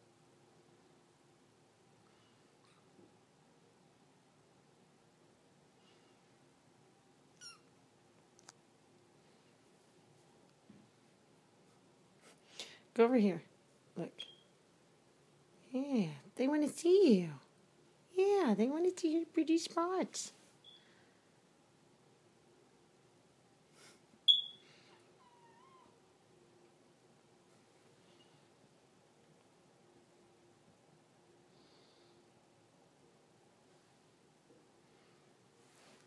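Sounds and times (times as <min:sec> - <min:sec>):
kitten meowing: 0:07.4 - 0:07.7.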